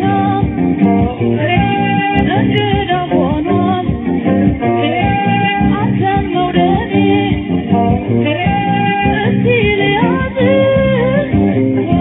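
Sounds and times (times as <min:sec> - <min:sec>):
person singing melody: 0:00.0 - 0:12.0
plucked strings: 0:00.0 - 0:12.0
steady beat: 0:00.0 - 0:12.0.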